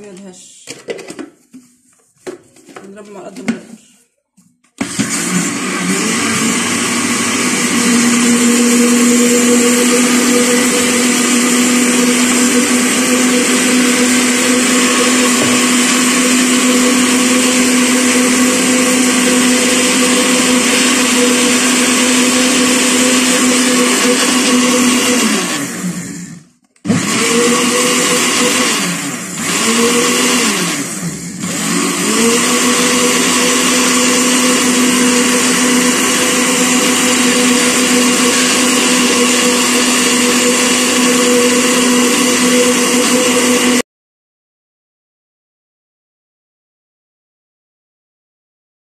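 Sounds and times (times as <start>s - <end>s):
blender motor running: 4.8s - 43.8s.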